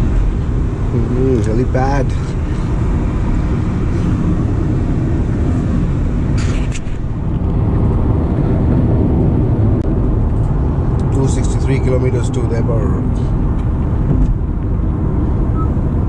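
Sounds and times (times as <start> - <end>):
road and wind noise in car cabin: 0.0 - 16.0.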